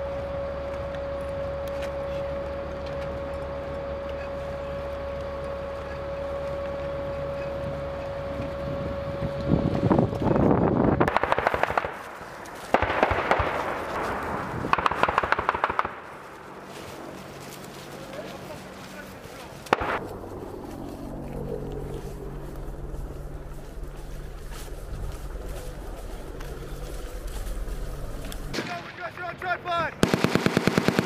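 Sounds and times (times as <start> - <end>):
armored vehicle engine whine: 0.0 - 11.2, 16.2 - 28.6
automatic gunfire: 11.0 - 12.0, 12.7 - 16.0, 30.0 - 31.0.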